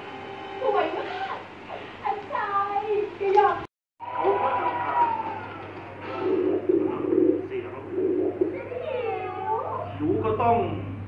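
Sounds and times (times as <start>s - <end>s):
steady low hum: 5.8s - 11.0s.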